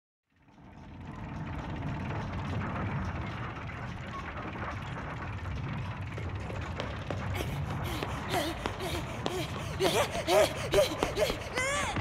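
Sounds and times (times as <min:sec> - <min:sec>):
low rumble: 0:00.3 - 0:12.0.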